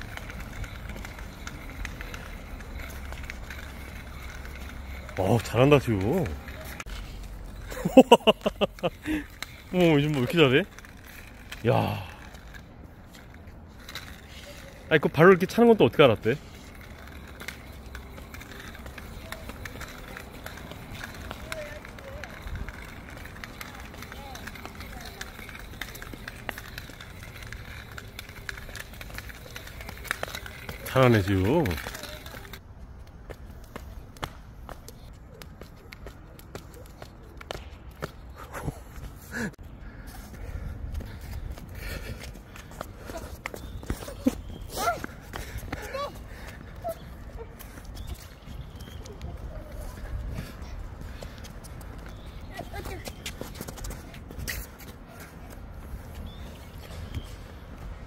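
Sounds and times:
child hopping footsteps: 0.0s - 58.0s
shoes patting hard court: 41.0s - 55.6s.

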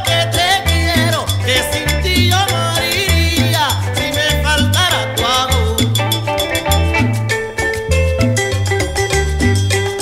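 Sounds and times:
electric guitar cumbia band: 0.0s - 10.0s.

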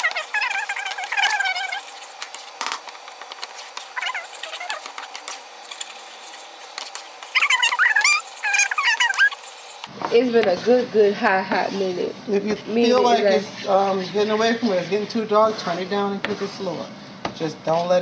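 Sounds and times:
high wavering chirping calls: 7.3s - 9.5s.

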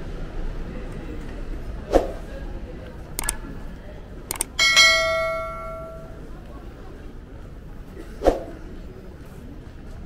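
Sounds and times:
mouse double click: 3.2s - 3.4s, 4.3s - 4.5s
bright bell ding: 4.6s - 6.2s.

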